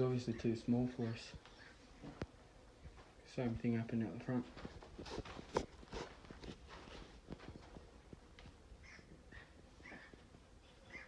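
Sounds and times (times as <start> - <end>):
footsteps on dirt floor: 2.8 - 8.6.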